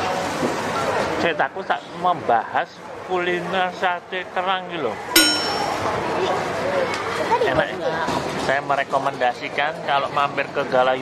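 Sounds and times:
sharp metallic clang: 0:05.2 - 0:06.0.

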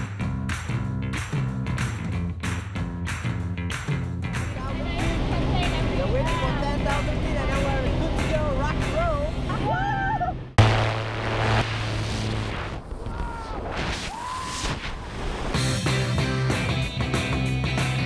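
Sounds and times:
rock music with guitar: 0:00.0 - 0:04.7, 0:15.6 - 0:18.0
background music with voice: 0:04.5 - 0:09.6.

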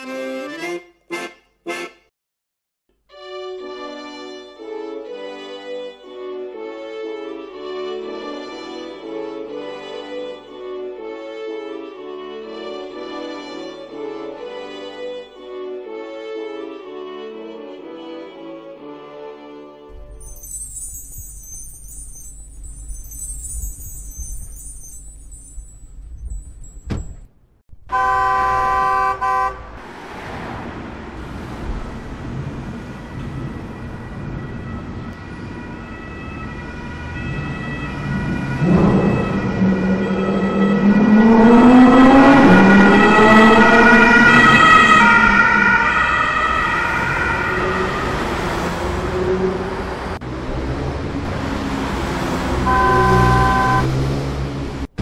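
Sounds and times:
siren wailing: 0:32.9 - 0:50.2, 0:52.7 - 0:53.9
steady chord of tones: 0:39.1 - 0:49.4.

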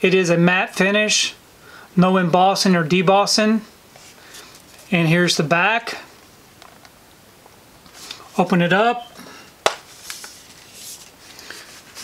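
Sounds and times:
case rubbing while handled: 0:09.8 - 0:12.0.

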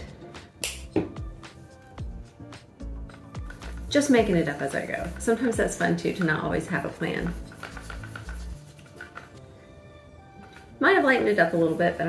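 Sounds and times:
background music with a beat: 0:00.0 - 0:09.6
sharp snap-like click: 0:00.6 - 0:00.9.

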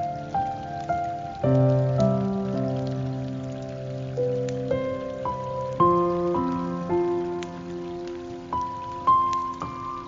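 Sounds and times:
falling water hiss: 0:00.0 - 0:10.0.

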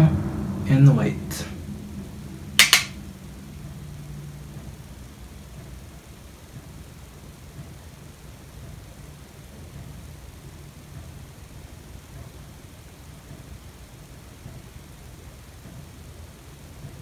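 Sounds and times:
low room hum: 0:00.0 - 0:17.0
sharp double click: 0:02.6 - 0:03.0.

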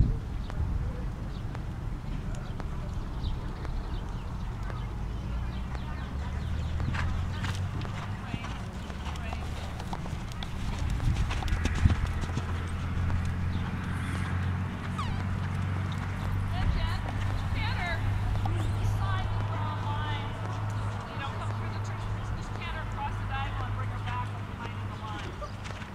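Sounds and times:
horse hoofbeats on sand: 0:01.2 - 0:25.9.

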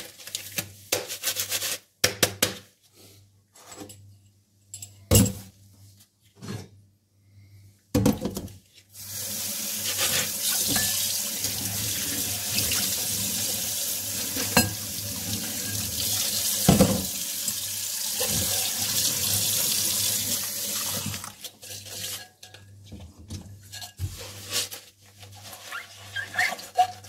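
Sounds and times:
tap water splashing in sink: 0:16.2 - 0:20.0.

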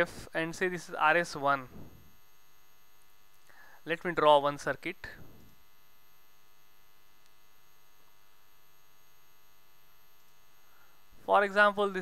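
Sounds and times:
faint electrical hum with whine: 0:00.0 - 0:12.0.

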